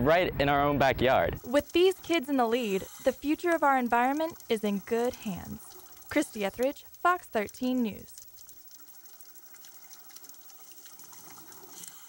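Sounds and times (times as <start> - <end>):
watery hiss: 1.4 - 7.8.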